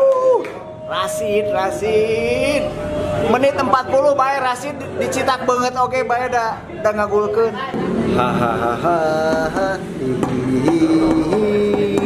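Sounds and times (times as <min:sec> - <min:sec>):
percussion hits: 0:07.7 - 0:12.0.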